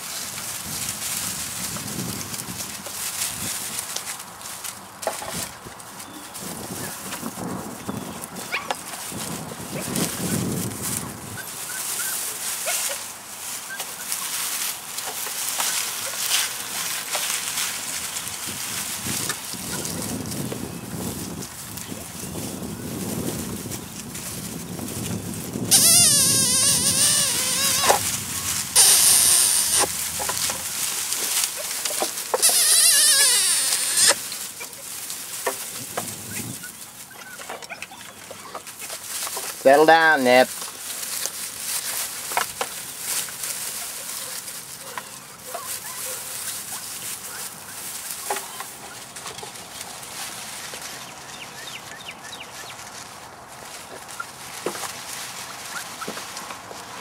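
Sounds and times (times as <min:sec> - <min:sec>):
handling noise: 0:00.0 - 0:51.8
grass rustling: 0:00.0 - 0:57.0
puppies squeaking: 0:07.9 - 0:08.8, 0:11.3 - 0:12.9, 0:25.7 - 0:30.6, 0:32.3 - 0:34.9, 0:36.3 - 0:39.0.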